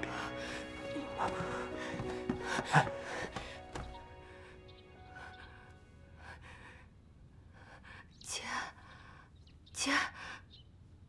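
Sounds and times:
woman breathing tearfully: 0.0s - 6.9s.

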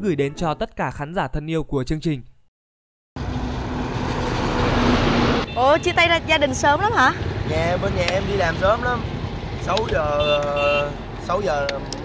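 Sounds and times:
road and wind noise: 3.2s - 12.0s.

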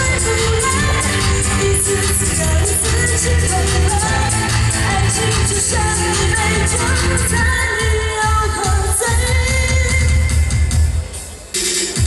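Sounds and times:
woman singing into microphone: 0.0s - 10.6s
live band playing: 0.0s - 12.0s.

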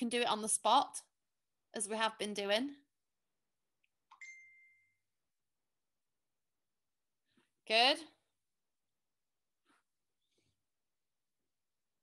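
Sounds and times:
ding: 4.1s - 5.1s.

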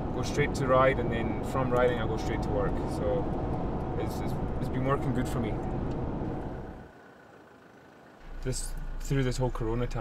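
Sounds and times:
vehicle rumble from inside cab: 0.0s - 10.0s.

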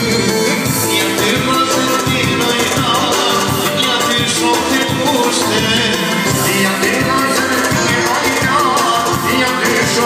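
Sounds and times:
amplified instrumental backing: 0.0s - 10.0s
man singing into a microphone: 0.0s - 10.0s.

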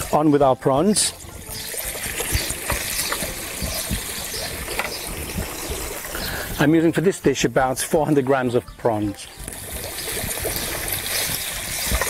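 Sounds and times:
prawns sizzling in a frying pan: 1.0s - 6.6s, 9.5s - 12.0s.

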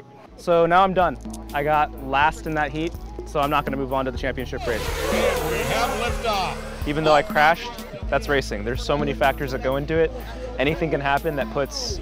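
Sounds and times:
background music: 0.0s - 12.0s
drone motors whining: 4.6s - 8.0s.

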